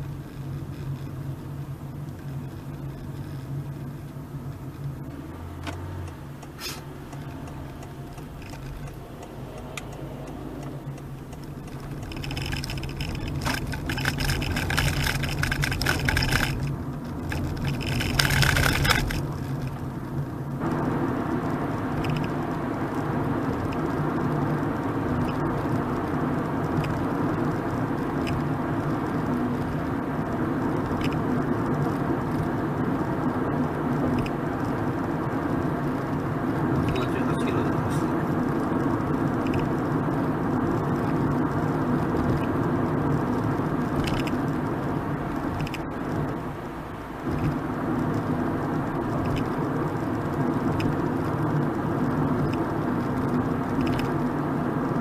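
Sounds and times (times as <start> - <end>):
road and tyre noise in car: 0.0 - 55.0.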